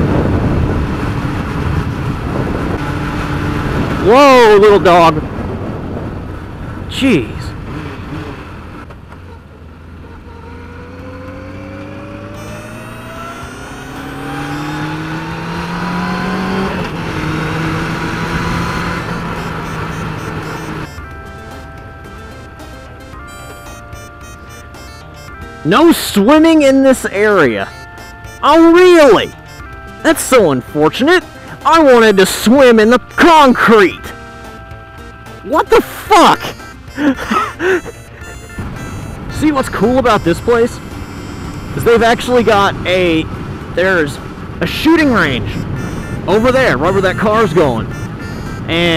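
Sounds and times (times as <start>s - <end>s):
wind noise on microphone: 0.0s - 6.9s, 42.7s - 48.7s
wind rumble: 0.0s - 20.9s, 38.6s - 48.8s
motorcycle engine accelerating: 0.0s - 48.9s
man laughing: 36.3s - 38.3s.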